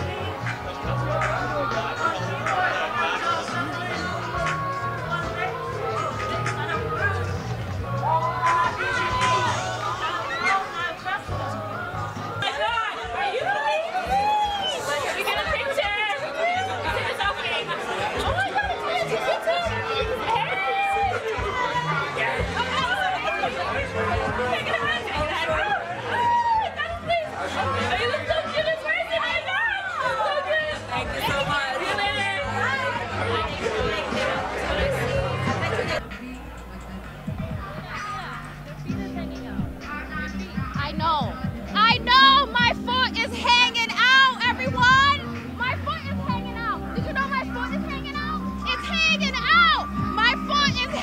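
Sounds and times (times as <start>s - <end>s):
music: 0.0s - 51.0s
women chattering: 0.0s - 51.0s
women squealing and whooping: 8.0s - 11.0s, 12.5s - 15.1s, 20.3s - 21.5s, 25.4s - 27.2s.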